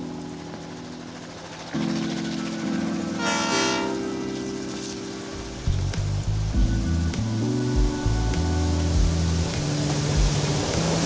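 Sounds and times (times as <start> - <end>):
locomotive horn: 3.2 - 4.2.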